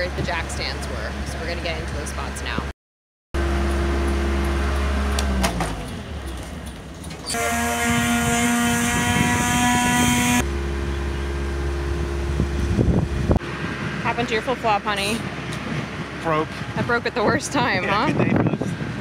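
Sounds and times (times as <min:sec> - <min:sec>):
engine low hum: 0:03.4 - 0:19.0.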